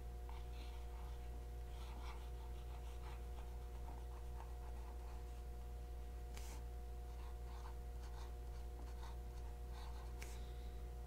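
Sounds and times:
fountain pen scratching paper: 0.3 - 5.3.

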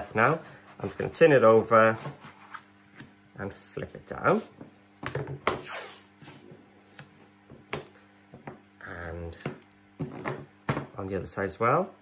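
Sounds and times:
taps and knocks on tabletop: 9.4 - 11.0.

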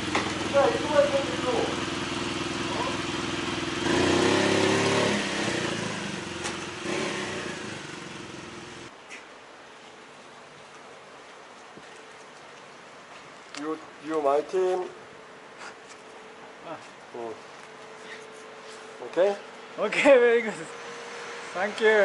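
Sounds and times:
motorcycle engine revving: 0.0 - 8.9
quiet street background: 0.0 - 22.0.

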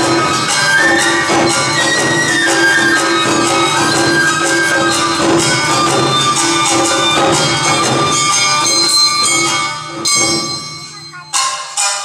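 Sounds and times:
bamboo flutes: 0.0 - 9.6
drums: 0.0 - 12.0
metal hand gongs ringing: 0.0 - 12.0
shamisen: 0.0 - 12.0.

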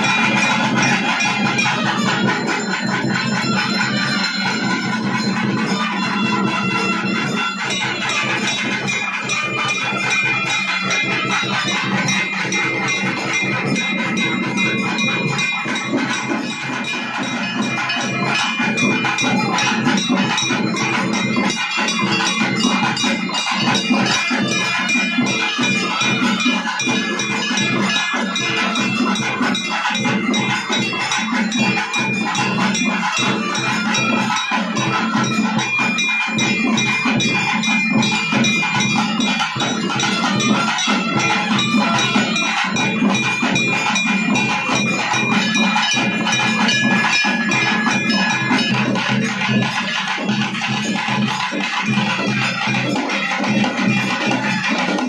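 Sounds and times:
drum ensemble playing fast beat: 0.0 - 55.0
metallic ringing: 0.0 - 55.0.

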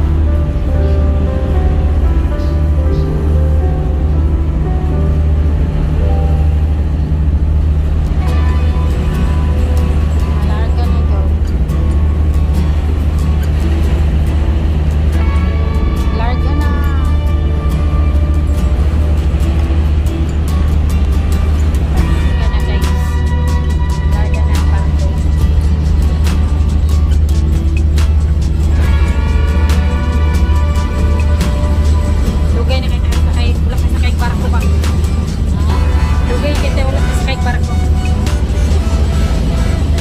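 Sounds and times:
ferry engines droning: 0.0 - 40.0
music playing: 0.0 - 40.0.

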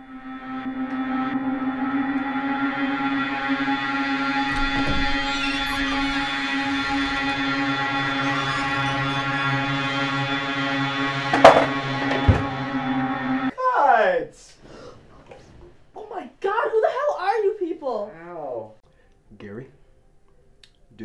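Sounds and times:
eerie ambient drone music: 0.0 - 13.5
loud thump: 4.4 - 6.9, 11.3 - 12.6
lower knock: 11.2 - 12.8.

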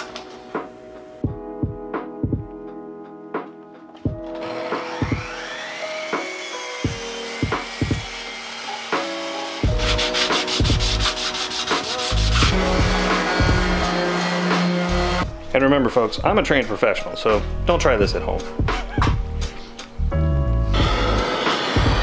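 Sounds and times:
background music: 0.0 - 22.0
motor whine spinning up: 4.4 - 8.3
orbital sander on wood: 4.4 - 15.2.

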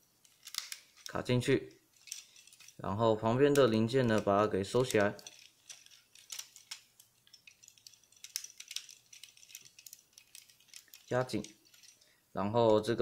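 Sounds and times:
plastic toy parts clicking: 0.2 - 1.3, 1.9 - 2.8, 3.4 - 12.0.

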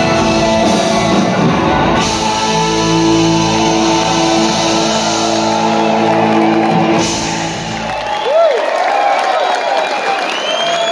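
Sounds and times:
rock band electric guitar chord: 0.0 - 8.0
crowd cheering and whistling: 0.0 - 10.9.

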